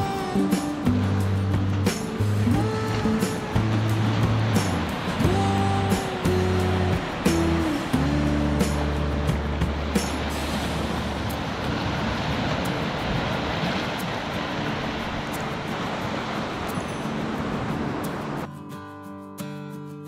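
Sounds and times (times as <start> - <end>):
waves washing over rock: 0.0 - 18.5
background music: 0.0 - 19.8.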